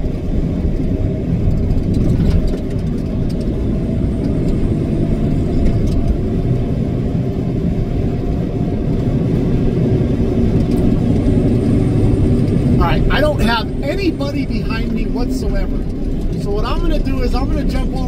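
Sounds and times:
road noise: 0.0 - 18.0
truck engine drone: 0.0 - 18.0.

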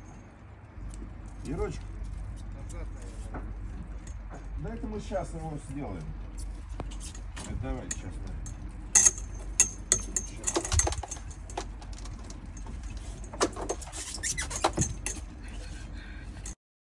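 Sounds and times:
low steady rumble: 0.0 - 16.6
metallic clinks and knocks: 6.5 - 15.6.

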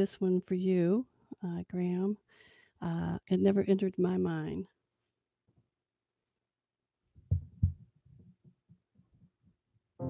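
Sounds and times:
soft low taps: 7.3 - 7.9.

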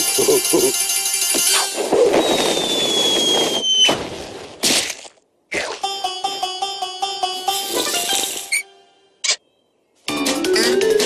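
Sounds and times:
cartoon score music: 0.0 - 2.0, 5.8 - 8.9, 10.1 - 11.0.

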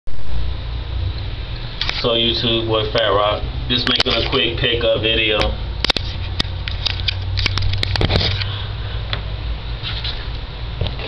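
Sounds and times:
steady low hum: 0.1 - 11.0.

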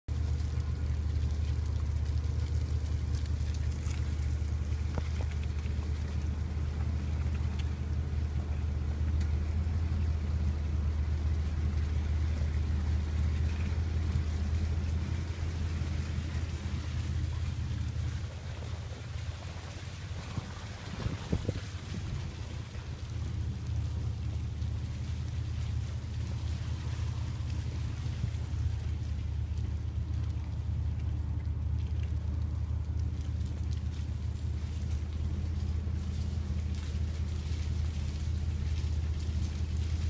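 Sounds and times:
road noise: 0.0 - 40.0
vehicle engine running: 0.0 - 40.0.

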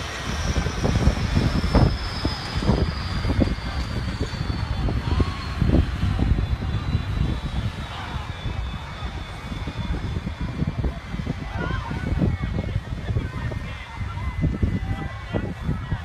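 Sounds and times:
jet engine whine: 0.0 - 16.0
wind rumbling on microphone: 0.0 - 16.0.

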